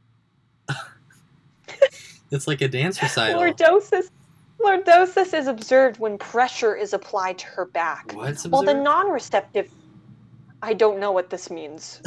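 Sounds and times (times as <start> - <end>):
person coughing: 0.7 - 1.0.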